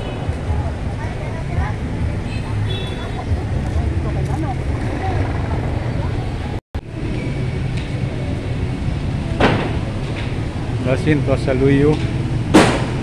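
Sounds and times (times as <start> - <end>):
passers-by's voices: 0.0 - 12.6
traffic rumble: 0.0 - 13.0.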